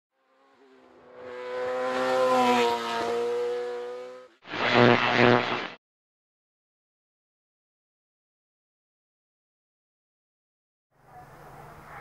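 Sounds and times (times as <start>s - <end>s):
car engine: 0.2s - 4.6s.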